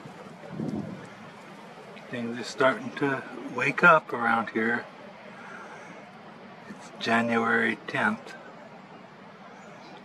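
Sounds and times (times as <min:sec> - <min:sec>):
wind rushing on microphone: 0:00.0 - 0:01.3.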